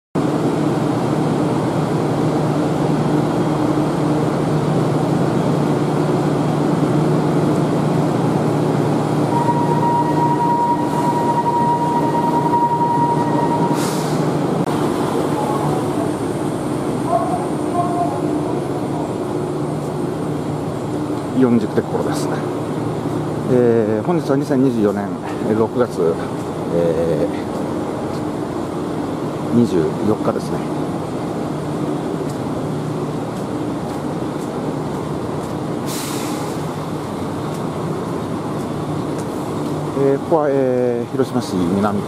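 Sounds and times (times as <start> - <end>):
streetcar equipment humming: 0.2 - 42.0
steady high tone: 9.3 - 19.1
short hiss: 35.8 - 36.7.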